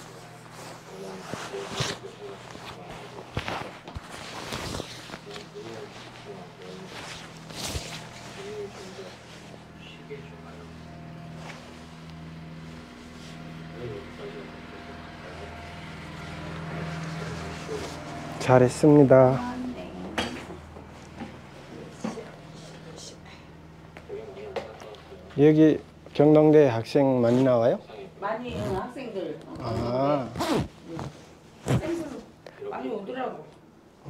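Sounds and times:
faint indistinct voices: 0.0 - 11.7, 13.2 - 25.4
low machine hum: 0.0 - 34.0.

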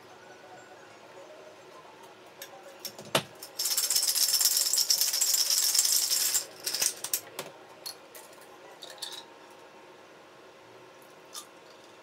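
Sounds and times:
ice rattling in cocktail shaker: 3.4 - 7.2.

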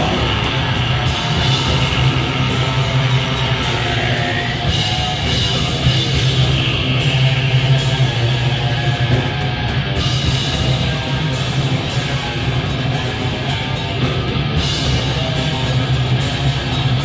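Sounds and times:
bass guitar: 0.0 - 17.0
drum kit: 0.0 - 17.0
electric guitars: 0.0 - 17.0.

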